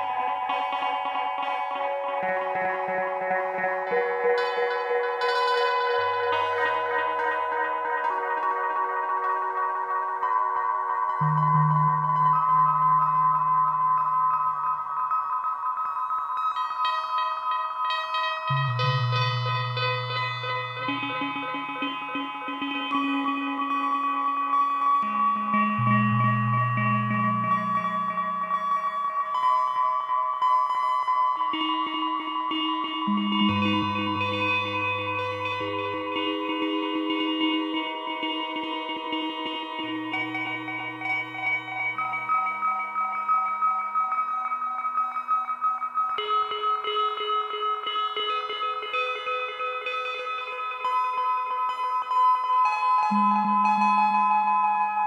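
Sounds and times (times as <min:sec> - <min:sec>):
plucked synth tones with echoes: 0:00.0 - 0:55.0
low synth bass notes: 0:11.2 - 0:14.7, 0:25.0 - 0:28.8.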